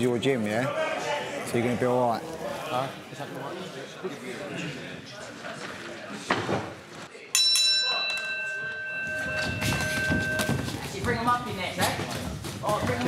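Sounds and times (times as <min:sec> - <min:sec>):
crowd voices and shouts: 0:00.0 - 0:06.4
boxing ring bell ringing: 0:07.4 - 0:11.4.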